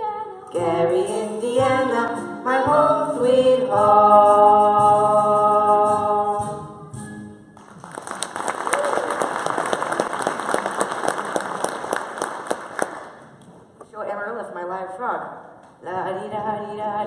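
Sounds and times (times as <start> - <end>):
audience applauding: 7.6 - 13.2.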